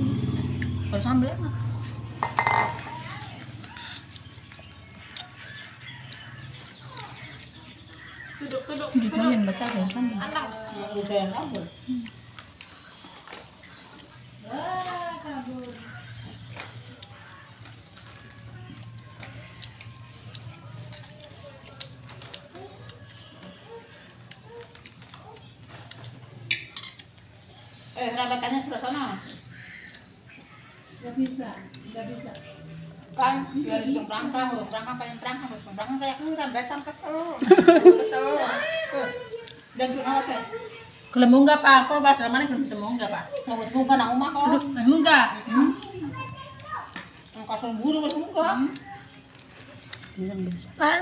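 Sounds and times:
child talking and calling out: 45.5s - 47.0s.

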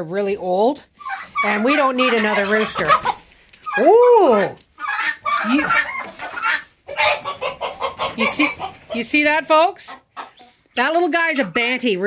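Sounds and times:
chickens clucking and squawking: 0.9s - 12.0s.

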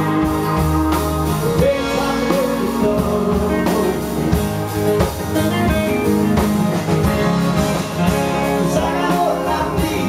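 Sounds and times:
drum hits: 0.0s - 10.0s
live rock band playing: 0.0s - 10.0s.

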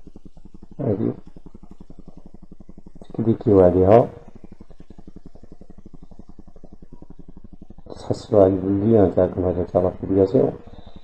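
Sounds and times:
low pulsing buzz: 0.0s - 11.0s.

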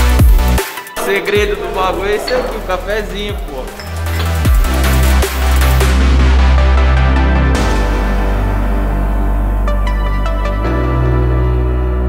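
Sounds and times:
background music bass line: 0.0s - 12.0s
people talking: 0.9s - 4.3s
cups plates and cutlery clinking: 1.0s - 5.2s.

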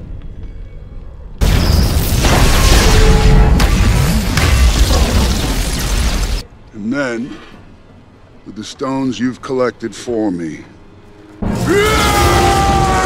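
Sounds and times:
film score: 0.0s - 13.0s.

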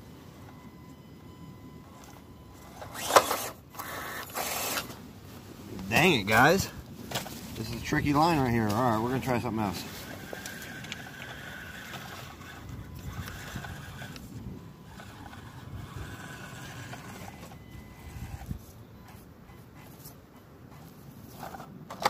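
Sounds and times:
electric motor whining: 1.7s - 5.0s, 8.8s - 21.6s
rough low rumbling over dirt: 5.0s - 19.1s.

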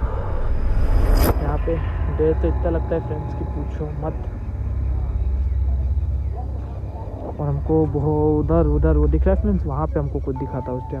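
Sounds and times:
low steady rumble: 0.0s - 10.9s
faint voices: 1.4s - 11.0s.

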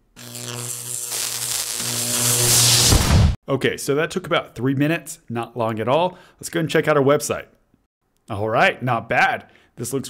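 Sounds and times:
deep hit: 2.8s - 3.4s.

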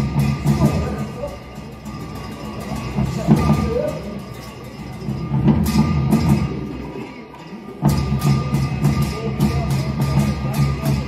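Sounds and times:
drum and cymbal strikes: 0.0s - 11.0s.

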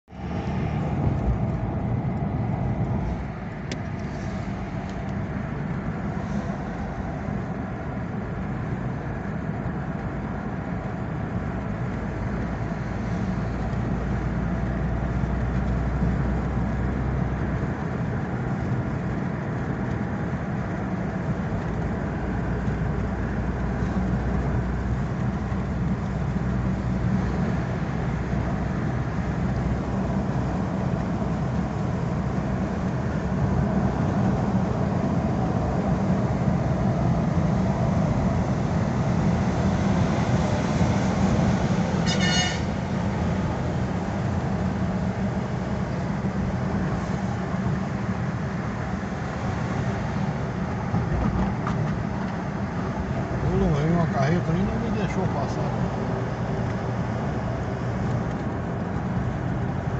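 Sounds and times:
car road noise from cabin: 0.0s - 59.9s.

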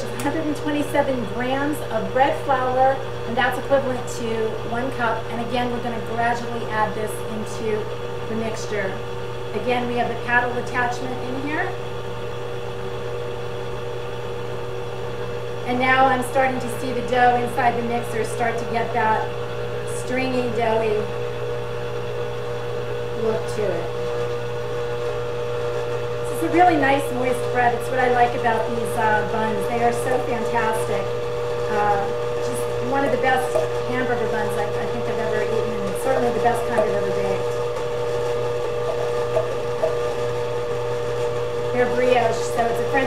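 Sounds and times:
stand mixer humming: 0.0s - 43.0s
paddle beating wet dough: 35.6s - 40.6s.

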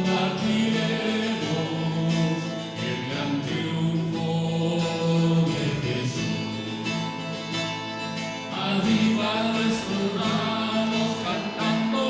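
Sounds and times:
group of voices singing a hymn: 0.0s - 7.0s, 8.5s - 12.0s.

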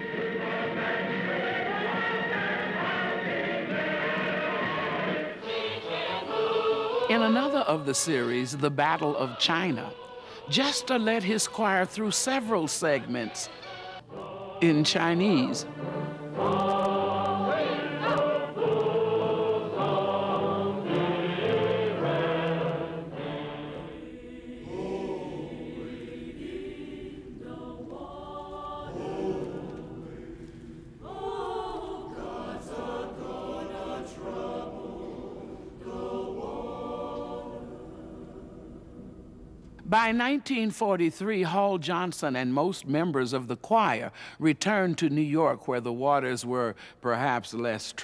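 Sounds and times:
choir singing held notes: 0.0s - 39.5s.

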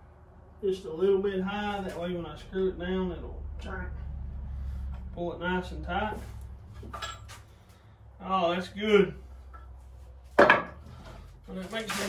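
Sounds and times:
light wooden knocks and clinks: 6.8s - 7.4s.

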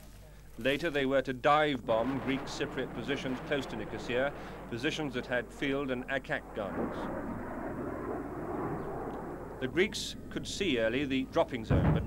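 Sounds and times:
jet fighter flying overhead: 1.9s - 12.0s.

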